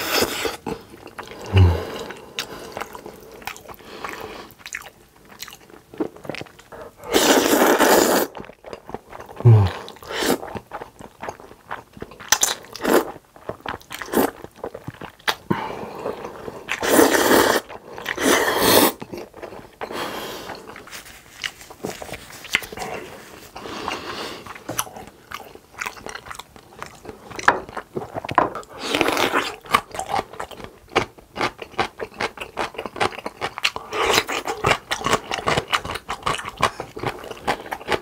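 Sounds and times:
loud slurping: 0:07.0 - 0:08.3, 0:16.8 - 0:19.0
wet chewing: 0:18.9 - 0:38.0.

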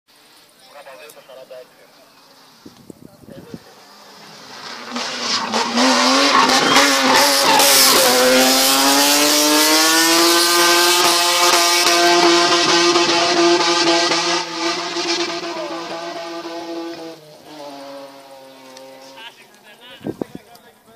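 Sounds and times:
racing car engine revving: 0:03.7 - 0:19.3
tyres squealing: 0:03.8 - 0:08.5.

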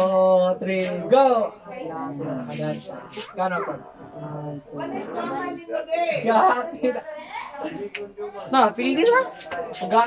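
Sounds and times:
voices talking: 0:00.0 - 0:10.0.

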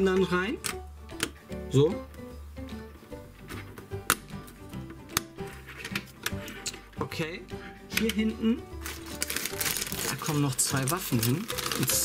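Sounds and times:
background music: 0:00.0 - 0:12.0
plastic parts clicking into place: 0:05.1 - 0:06.8.

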